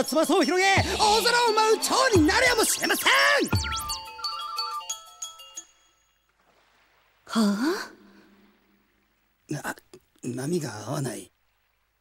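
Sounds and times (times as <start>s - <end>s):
chime-like synthesizer notes: 0.5s - 6.2s.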